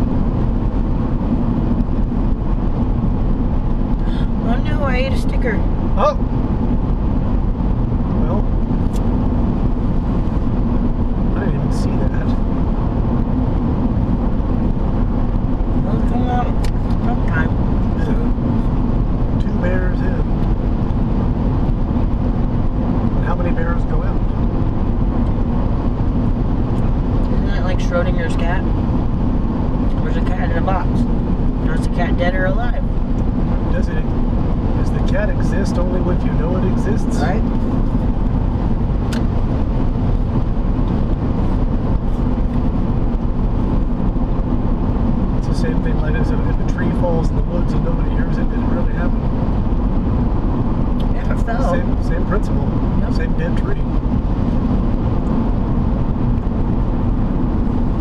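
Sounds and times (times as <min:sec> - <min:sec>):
car cabin road and engine drone: 0:00.0 - 0:58.0.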